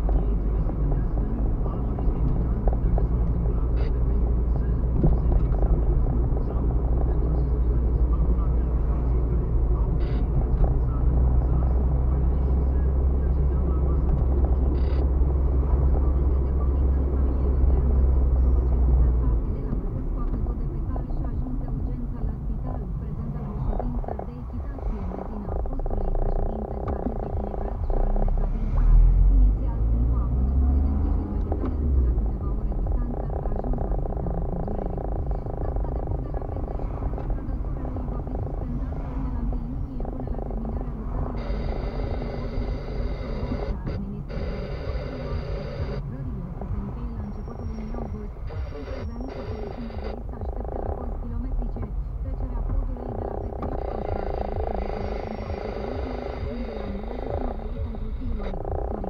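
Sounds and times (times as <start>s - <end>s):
engine and tyre rumble: 0.0s - 59.0s.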